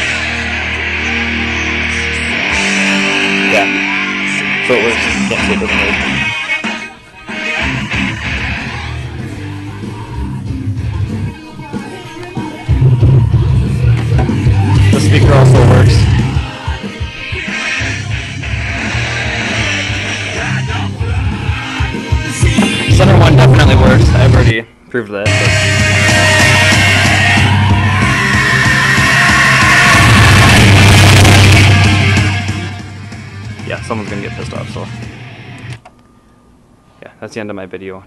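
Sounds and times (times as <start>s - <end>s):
music with strong bass line: 0.0s - 24.5s, 25.3s - 35.7s.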